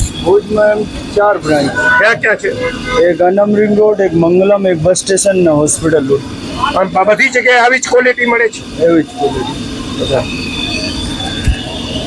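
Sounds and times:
man talking: 0.0s - 10.3s
steady background noise: 0.0s - 12.0s.

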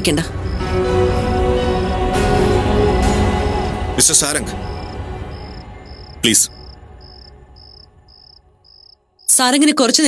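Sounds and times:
faint background music: 0.0s - 10.0s
cricket chirping: 0.2s - 1.3s, 3.5s - 9.5s.

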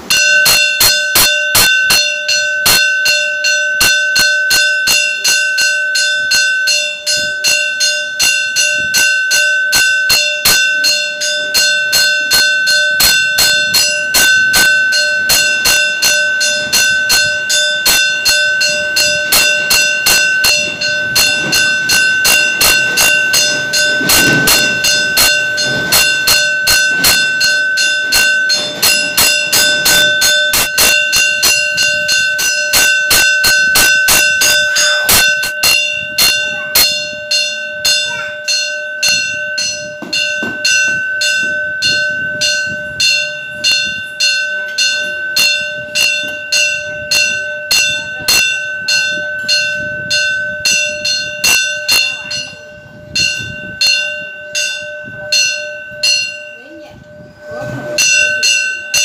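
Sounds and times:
metal temple bell ringing: 0.0s - 59.0s.

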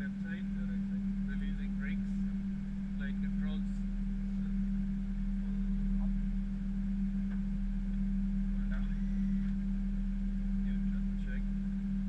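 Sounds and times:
deep engine rumble: 0.0s - 12.0s
steady low hum: 0.0s - 12.0s.

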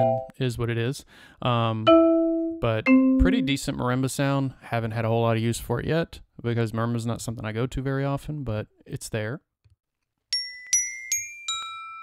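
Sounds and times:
glockenspiel notes ringing: 0.0s - 0.3s, 1.9s - 3.6s, 10.3s - 12.0s.

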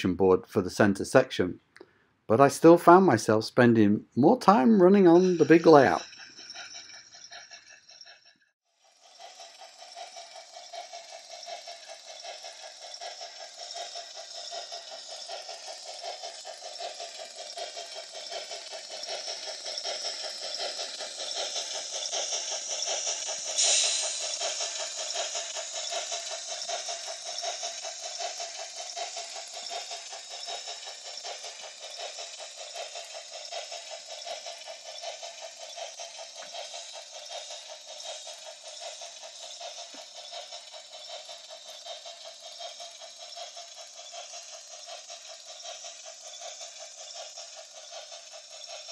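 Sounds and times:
model train wheels rattling: 0.0s - 48.9s.

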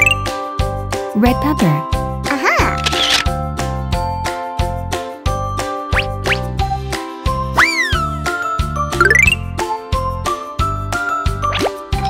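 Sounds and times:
bouncy children's music: 0.0s - 12.0s
sliding whistle sound effect: 7.6s - 8.0s.

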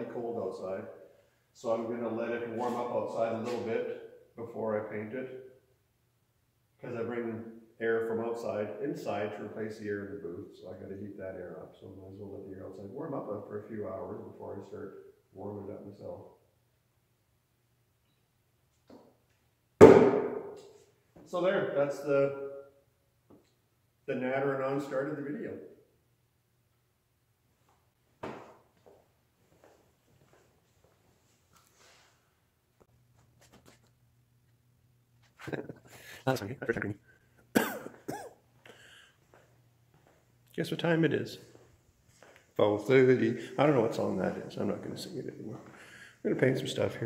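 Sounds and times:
man chuckling: 35.4s - 36.6s.

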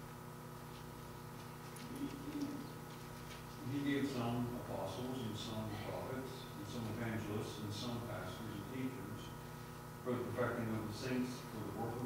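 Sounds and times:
person reading aloud: 3.6s - 9.2s, 10.0s - 12.0s.

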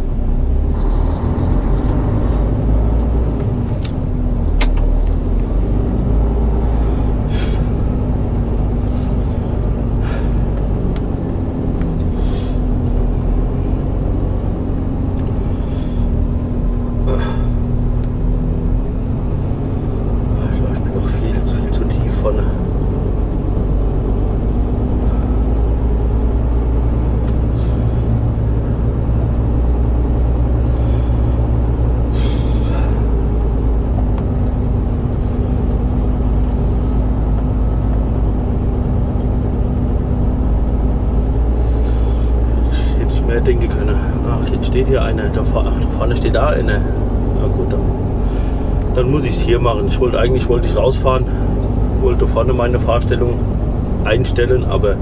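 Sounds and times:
diesel truck engine droning: 0.0s - 55.0s.

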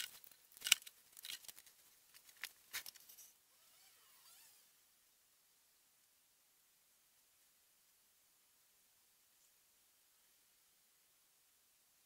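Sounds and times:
cable rustling: 0.0s - 3.4s.

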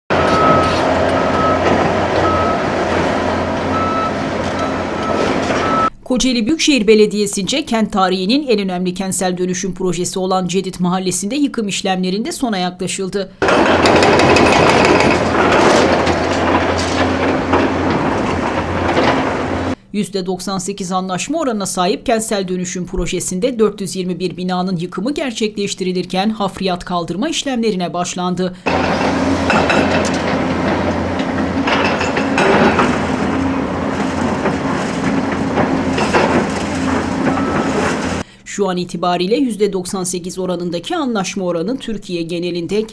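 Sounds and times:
hydraulic breaker hammering concrete: 0.1s - 5.9s, 13.4s - 19.8s, 28.6s - 38.2s
rubble scraping and crunching: 0.1s - 5.9s, 13.4s - 19.8s, 28.7s - 38.2s
excavator engine running: 0.1s - 6.0s, 13.4s - 19.8s, 28.6s - 38.3s.

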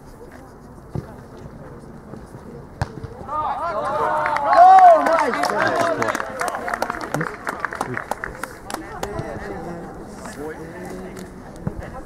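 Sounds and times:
ball being kicked: 2.8s - 3.3s
players shouting: 3.2s - 11.6s.

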